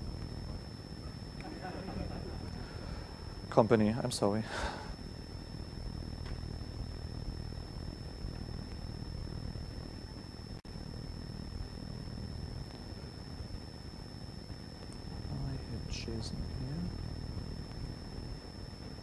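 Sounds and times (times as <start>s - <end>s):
low hum and hiss: 0.0s - 19.0s
thin high-pitched whine: 0.0s - 19.0s.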